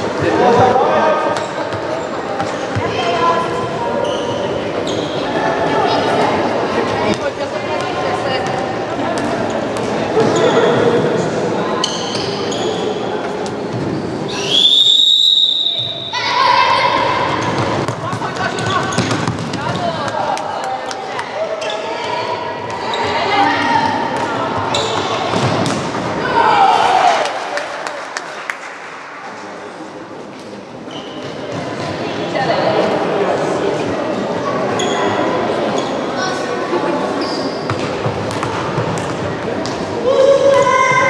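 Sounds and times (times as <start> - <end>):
referee's whistle: 14.3 - 16.3
ball bouncing on wooden floor: 17.6 - 20.2.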